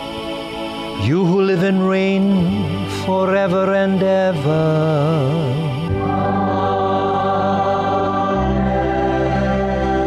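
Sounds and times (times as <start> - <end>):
choir singing held chord: 0.0 - 10.0.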